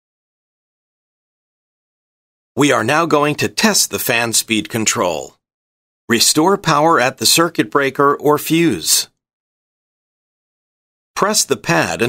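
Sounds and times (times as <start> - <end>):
narration voice: 2.6 - 5.4, 6.1 - 9.1, 11.2 - 12.0.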